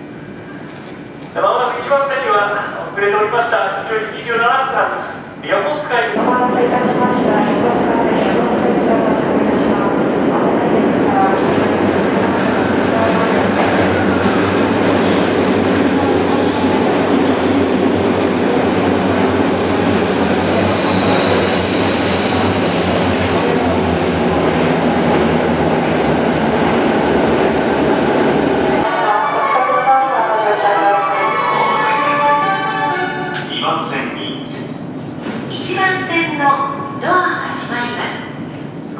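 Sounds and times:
electric train passing: 4.8 - 35.0.

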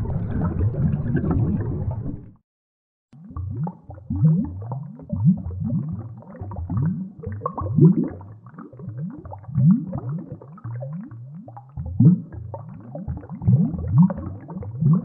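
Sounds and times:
underwater regulator bubbles: 0.0 - 2.4, 3.2 - 15.0.

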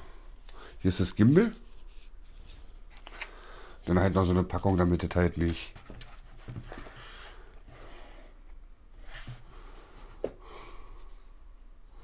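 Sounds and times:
rustling and handling noises: 0.0 - 11.2.

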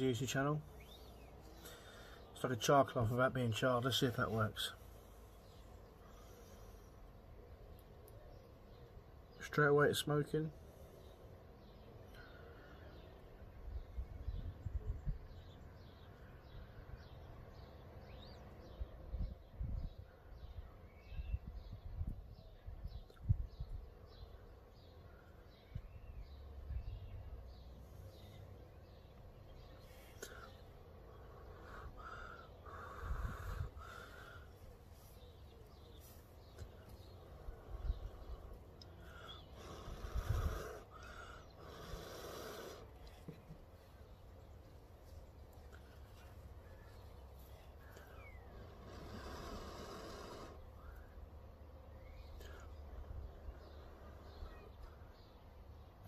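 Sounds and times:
person blowing airy puffs: 39.3 - 43.0.

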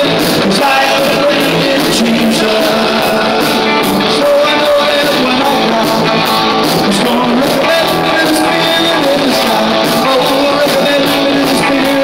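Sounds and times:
distorted electric guitars: 0.0 - 12.0
drums: 0.0 - 12.0
man singing: 0.0 - 12.0.

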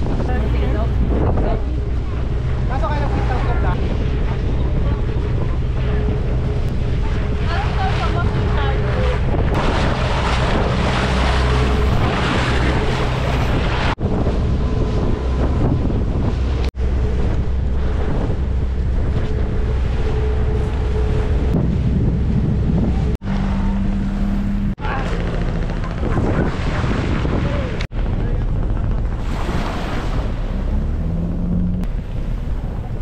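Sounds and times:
boat engine drone: 0.0 - 33.0
water rushing and splashing: 0.0 - 33.0
wind buffeting microphone: 0.0 - 33.0.

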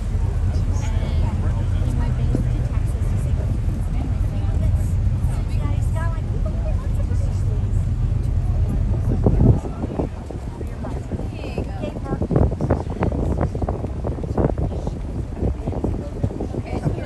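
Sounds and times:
faint conversation: 0.0 - 17.0
motor boat engine droning: 0.0 - 17.0.

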